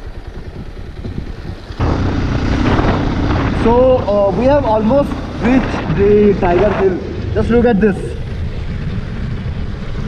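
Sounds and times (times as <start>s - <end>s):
motorcycle engine running: 0.0s - 10.0s
wind rushing over microphone: 0.0s - 10.0s.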